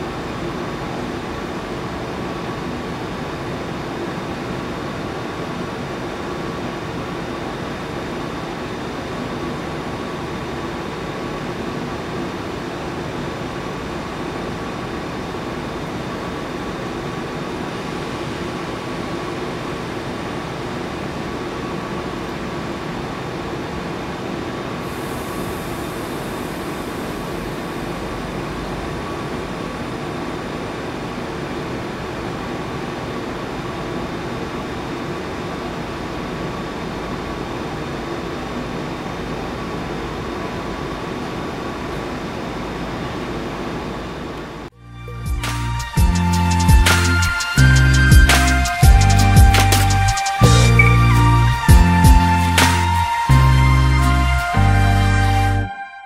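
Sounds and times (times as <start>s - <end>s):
high hiss: 24.8s - 30.3s, 45.2s - 54.2s.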